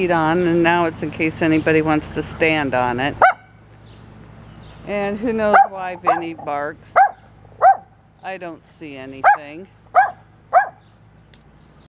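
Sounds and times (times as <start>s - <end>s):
small dog yapping: 3.2s - 3.5s, 5.6s - 7.9s, 9.2s - 10.8s.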